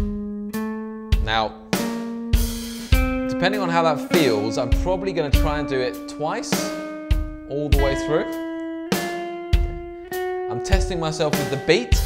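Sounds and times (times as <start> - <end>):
clean electric guitar notes: 0.0 - 12.0
slow drum machine beat: 0.0 - 12.0.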